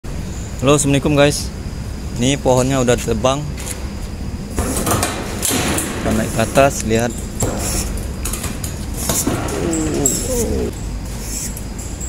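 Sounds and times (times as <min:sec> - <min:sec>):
wavering voice-like sound: 0:09.4 - 0:10.7.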